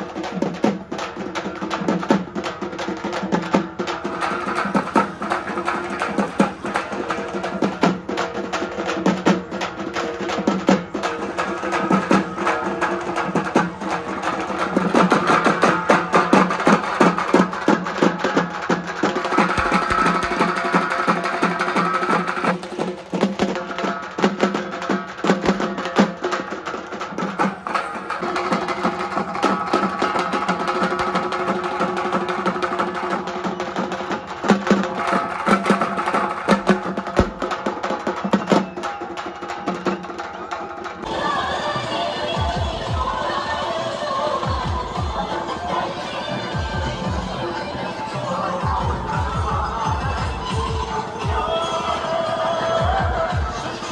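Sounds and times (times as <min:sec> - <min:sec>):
drummers beating large drums: 0:00.0 - 0:41.1.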